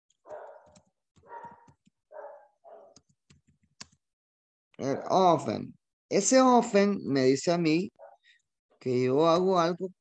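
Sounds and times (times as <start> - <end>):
keyboard clicks: 0.1 - 2.0, 2.9 - 4.0
faint dog barking: 0.3 - 3.0, 8.0 - 8.3.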